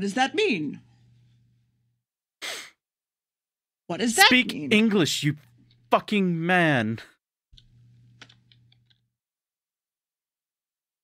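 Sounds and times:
person sighing: 2.4s - 2.8s
person speaking: 3.9s - 7.2s.

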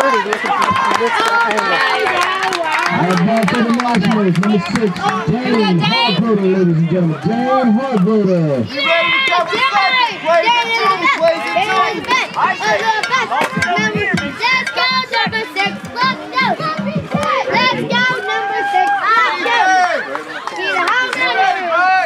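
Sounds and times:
children yelling and chanting: 4.8s - 6.3s, 8.4s - 22.0s.

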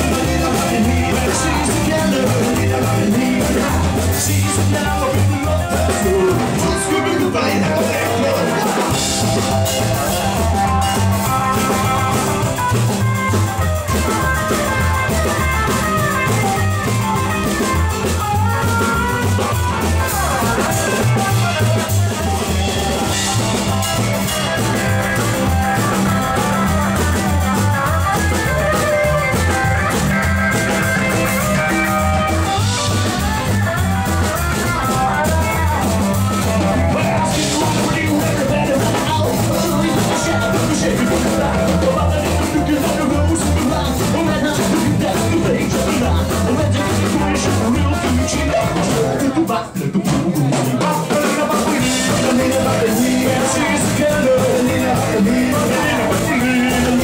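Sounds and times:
bass line: 0.0s - 57.0s
drum kit beat: 0.0s - 57.0s
electric guitar: 0.0s - 57.0s.

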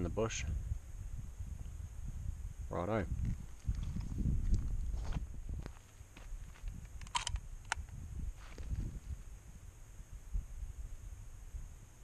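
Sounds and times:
footsteps on gravel: 3.3s - 7.3s, 8.4s - 9.0s
camera handling noise: 6.7s - 7.9s
sharp clicks: 6.7s - 7.9s.

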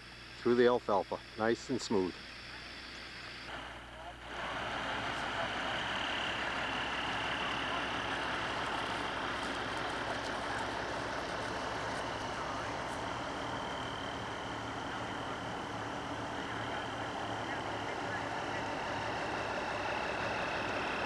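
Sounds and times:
even hiss: 0.0s - 14.4s
truck engine running: 2.0s - 21.0s.

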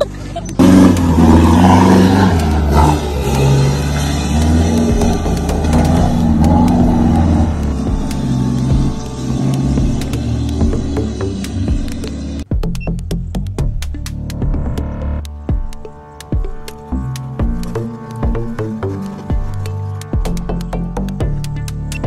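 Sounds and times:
truck engine under load: 0.0s - 12.5s
background music: 0.0s - 22.0s.

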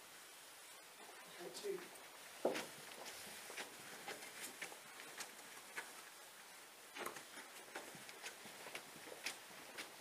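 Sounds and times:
soft footsteps: 1.8s - 10.0s.

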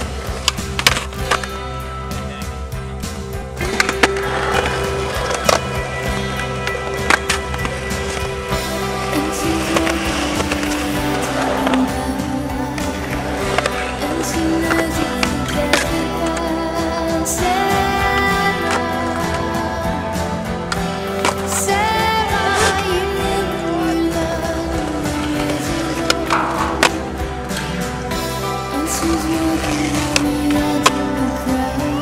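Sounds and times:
skateboard popping and landing: 0.0s - 1.6s, 3.6s - 12.0s, 24.7s - 28.1s
music with sustained tones: 0.0s - 32.0s
skateboard wheels rolling on concrete: 0.0s - 32.0s.

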